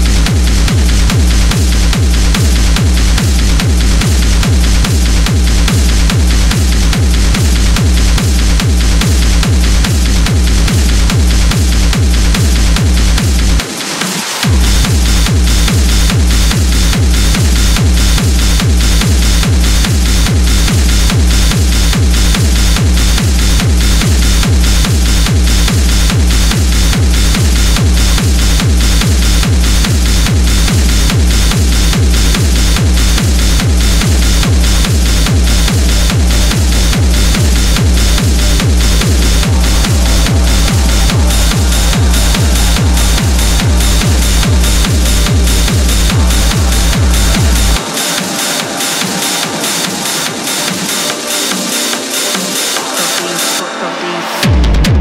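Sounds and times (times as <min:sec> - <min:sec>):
techno kick drum: 0:00.0 - 0:53.0, 0:54.4 - 0:55.0
noisy high percussion: 0:00.0 - 0:53.6.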